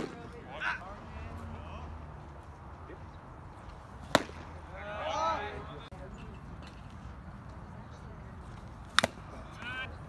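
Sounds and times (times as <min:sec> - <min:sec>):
bat cracking against ball: 0:04.0 - 0:04.6, 0:08.8 - 0:09.3.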